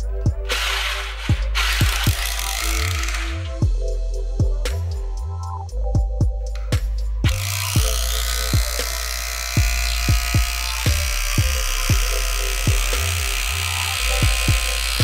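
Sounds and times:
electronic music with kick drum: 0.0 - 2.7, 3.5 - 15.0
rotary hammer boring wood: 0.5 - 3.6, 7.2 - 15.0.

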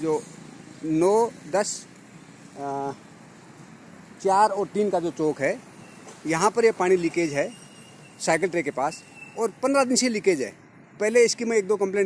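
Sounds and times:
faint outdoor background noise: 0.0 - 12.0
man hesitation sound: 2.6 - 3.0.

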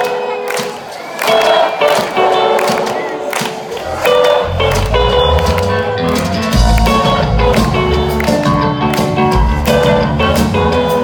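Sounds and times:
electric guitar notes: 3.8 - 11.0
heavy bass and drums: 3.8 - 11.0.

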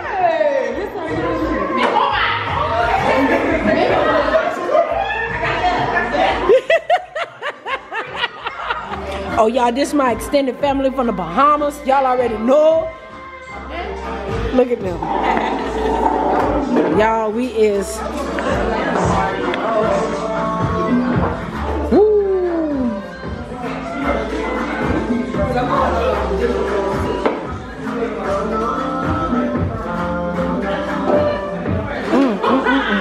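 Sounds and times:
background music: 0.0 - 33.0
chatter: 0.0 - 33.0
person laughing: 32.1 - 33.0.

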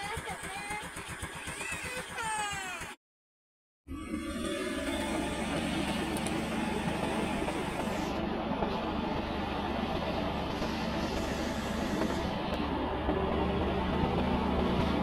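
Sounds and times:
vehicle engine drone: 3.9 - 15.0.

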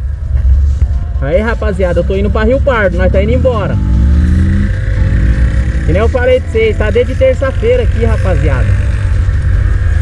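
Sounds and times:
motorcycle engine running: 1.9 - 10.0.

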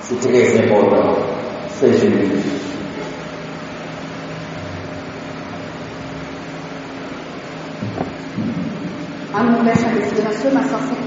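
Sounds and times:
fan hum with hiss: 0.0 - 11.0.

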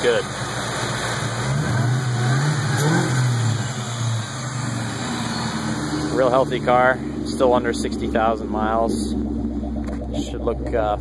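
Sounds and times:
car engine revving and idling: 0.0 - 11.0.

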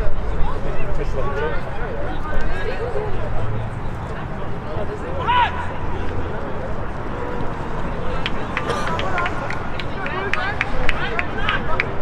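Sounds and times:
players calling out: 4.7 - 12.0.

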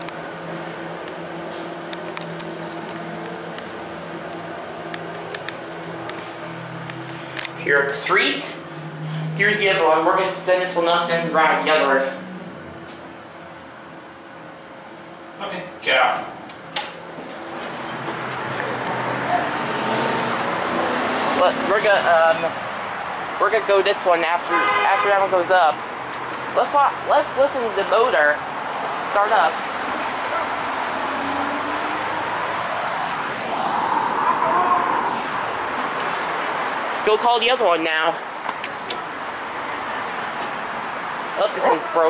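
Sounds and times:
road traffic passing: 0.0 - 42.0.

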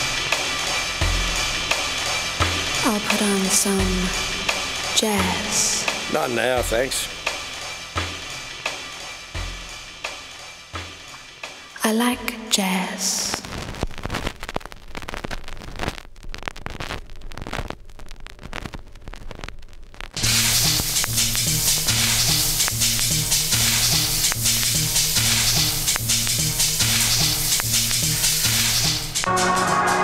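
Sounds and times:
record crackling: 0.0 - 30.0
repeating bass line: 2.6 - 7.3.

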